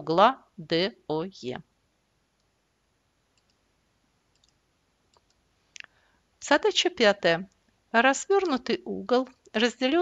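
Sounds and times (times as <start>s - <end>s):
faint clicks: 3.3s - 3.6s, 4.3s - 6.0s.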